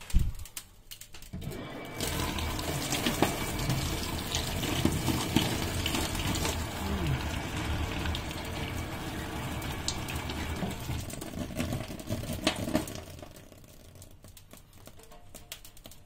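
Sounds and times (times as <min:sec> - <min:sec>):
small crackles and pops: 0:00.0 - 0:01.4, 0:02.3 - 0:16.0
dry ice bubbling in water: 0:01.3 - 0:16.0.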